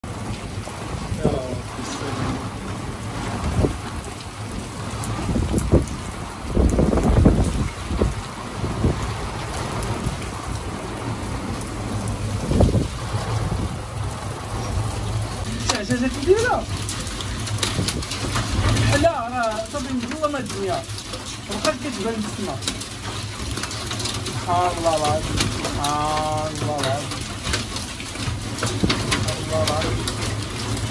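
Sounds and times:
rain hissing: 0.0 - 30.9
thunder rumbles: 0.0 - 30.9.

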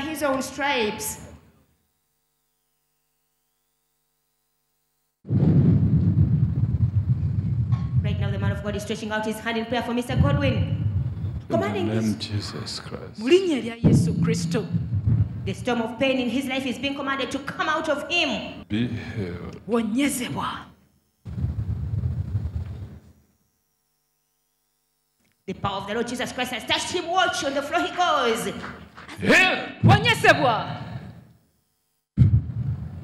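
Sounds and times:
loud low rumble: 5.3 - 8.8, 10.1 - 11.6, 13.8 - 15.6, 21.3 - 23.0
person speaking: 11.5 - 14.8, 18.6 - 20.6, 29.1 - 30.3.

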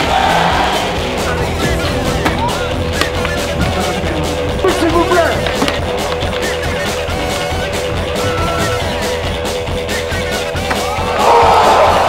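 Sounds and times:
background music: 0.0 - 12.0
skateboards rolling on concrete: 0.0 - 12.0
skateboards knocking the ground: 1.4 - 9.4.

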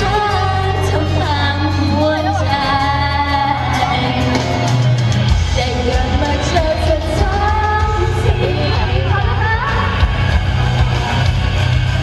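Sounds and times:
woman singing into microphone: 0.0 - 4.8, 5.5 - 10.0
backing track with heavy bass: 0.0 - 12.0.

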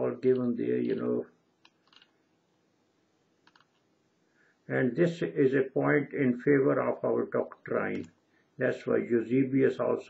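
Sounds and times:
faint clicks: 3.4 - 3.8.

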